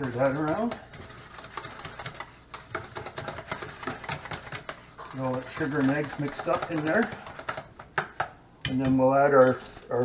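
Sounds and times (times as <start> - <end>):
utensil scraping metal bowl: 0.0 - 7.7.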